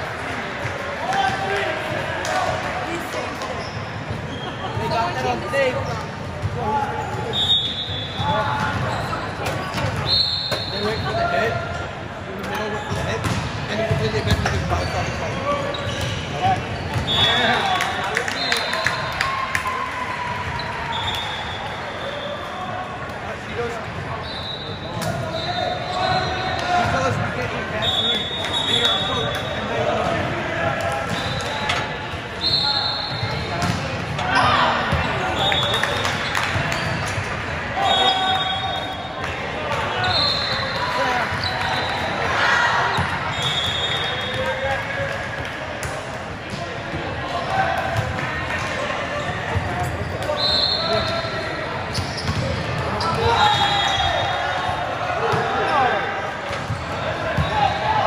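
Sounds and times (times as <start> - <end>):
chatter in echoing hall: 0.0 - 58.0
volleyballs hit and bouncing: 0.1 - 7.4, 8.2 - 11.0, 12.3 - 21.2, 33.3 - 38.1, 38.7 - 57.9
sneakers squeaking on court floor: 2.9 - 11.5, 12.4 - 18.7, 20.4 - 22.6, 23.6 - 30.2, 31.0 - 44.6, 48.9 - 58.0.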